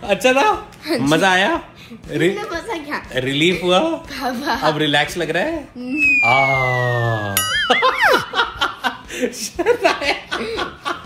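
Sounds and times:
people laughing: 0:07.6 - 0:11.0.

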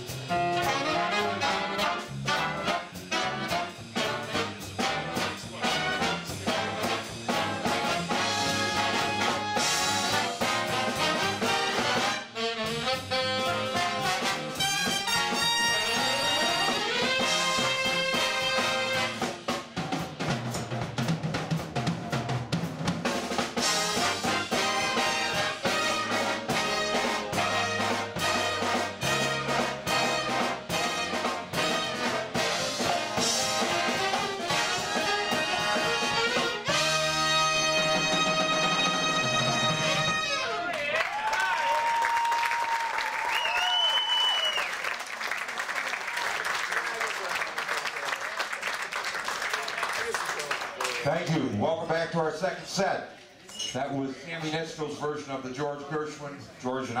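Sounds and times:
jazz big band playing swing: 0:00.0 - 0:40.7.

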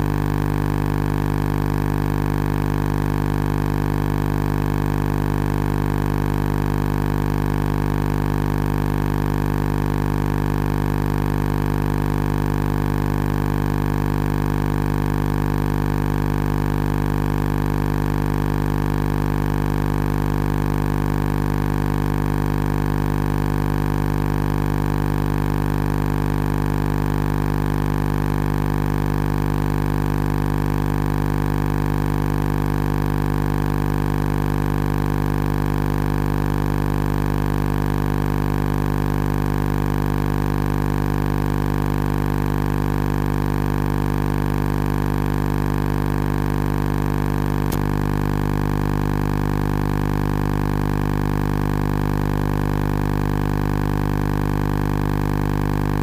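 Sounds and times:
loud steady hum: 0:00.0 - 0:01.0, 0:47.5 - 0:49.6, 0:54.0 - 0:56.0.

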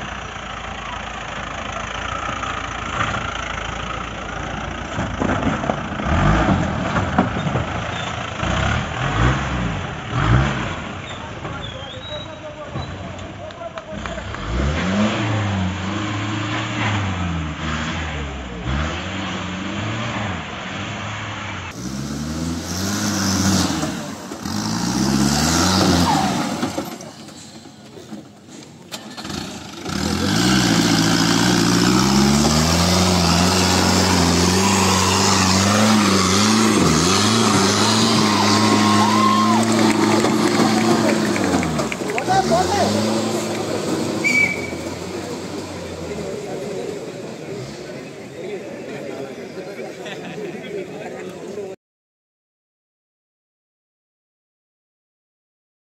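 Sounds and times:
jeep engines revving in mud: 0:00.0 - 0:51.6.

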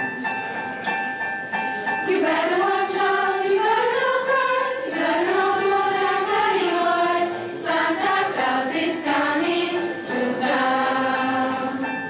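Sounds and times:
piano chords and notes: 0:00.0 - 0:12.0.

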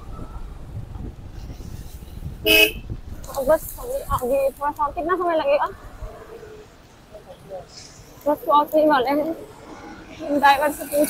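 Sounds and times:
vehicle horn honk: 0:02.4 - 0:02.9.

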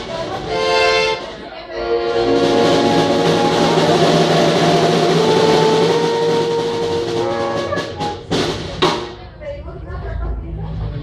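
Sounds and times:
saxophone trombone and accordion band: 0:00.4 - 0:08.3
sharp percussion hits: 0:01.8 - 0:09.3.

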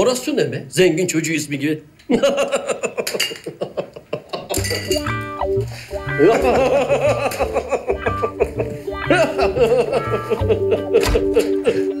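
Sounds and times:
men laughing: 0:02.1 - 0:04.9, 0:05.7 - 0:12.0
light comedic music: 0:04.5 - 0:12.0.

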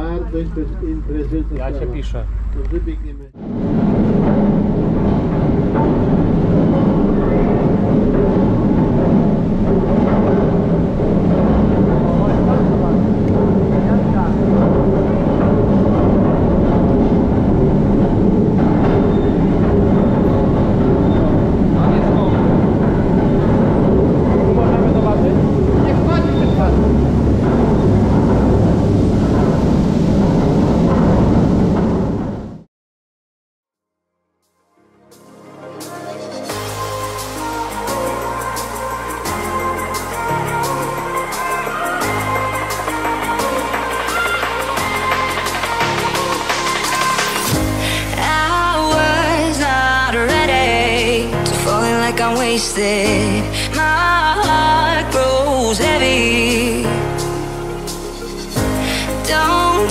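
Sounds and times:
machinery rumbling and clattering: 0:00.0 - 0:32.7, 0:36.5 - 0:59.9.

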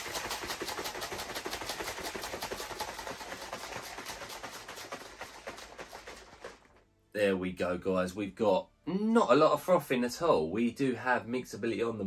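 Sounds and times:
liquid sloshing in shaker bottle: 0:00.0 - 0:06.8.

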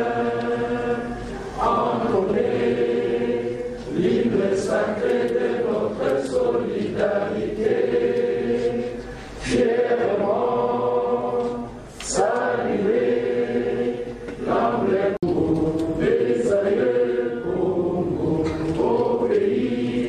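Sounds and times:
crowd singing long held notes: 0:00.0 - 0:20.0.

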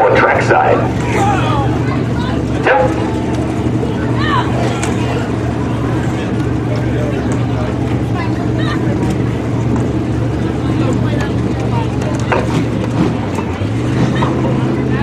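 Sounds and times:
people talking: 0:00.0 - 0:15.0
race car engine idling: 0:00.0 - 0:15.0.

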